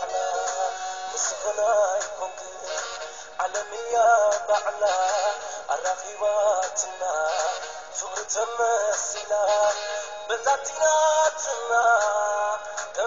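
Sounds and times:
dance backing music: 0.0 - 13.0.

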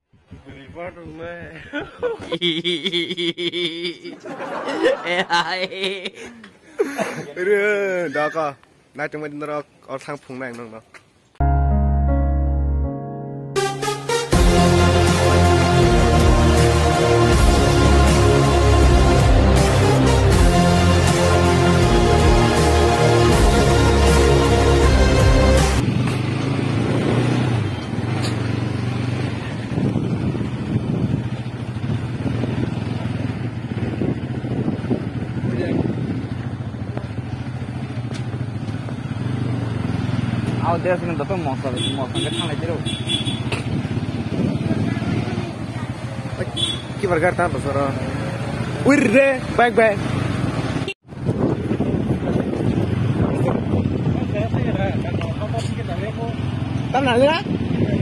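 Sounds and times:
person calling: 2.2 - 4.2
electronic music: 11.4 - 25.8
motorcycle engine running: 25.8 - 48.9.

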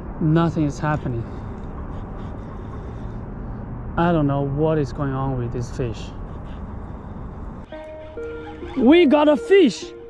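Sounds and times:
low outdoor rumble: 0.0 - 9.1
background music with held notes: 7.7 - 10.0.

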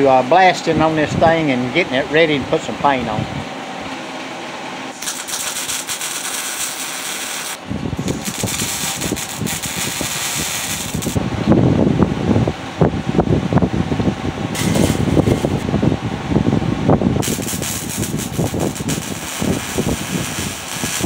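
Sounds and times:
welder crackling and spitting: 4.9 - 11.2, 14.6 - 15.6, 17.2 - 21.0.

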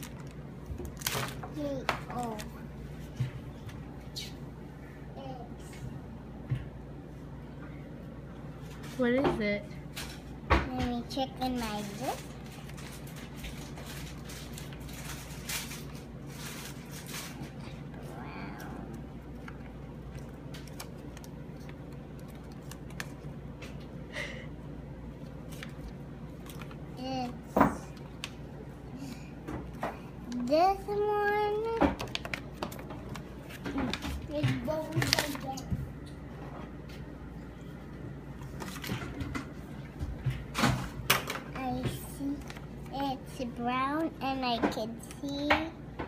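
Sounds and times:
packaging crackle: 0.0 - 1.4, 11.8 - 17.5
paper packaging rustling: 0.0 - 2.6, 11.5 - 23.3, 25.3 - 27.4, 30.3 - 34.0, 34.7 - 35.6
steady low hum: 0.0 - 46.0.

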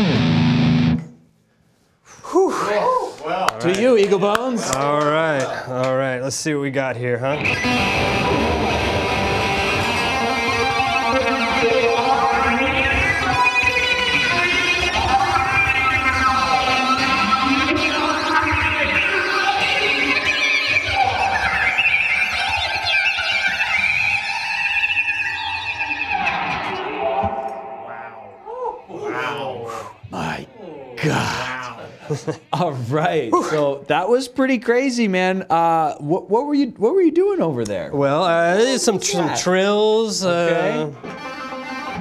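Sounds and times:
distorted electric guitar: 0.0 - 1.2, 7.2 - 33.3, 40.3 - 42.0.

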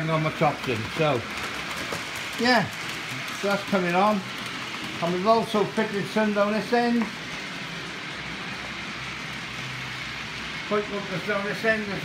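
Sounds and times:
model train wheels rolling on track: 0.0 - 12.0.

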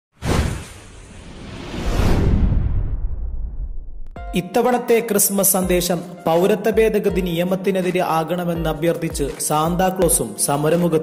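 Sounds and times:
swoosh: 0.2 - 4.2
deep rumble: 1.0 - 4.2.

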